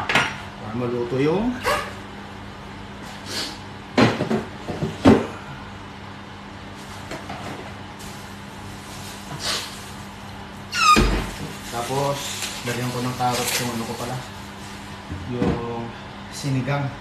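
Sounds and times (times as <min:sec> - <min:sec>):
brief high squeal: 0:10.7 - 0:11.1.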